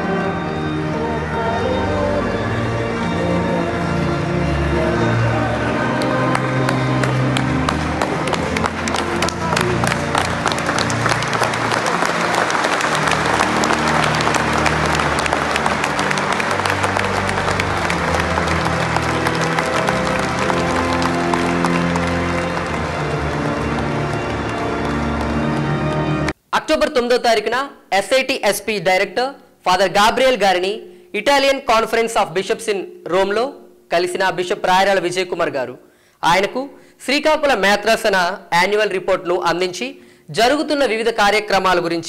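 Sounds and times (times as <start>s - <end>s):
music of long held notes: 0.0s - 26.4s
applause: 6.0s - 26.4s.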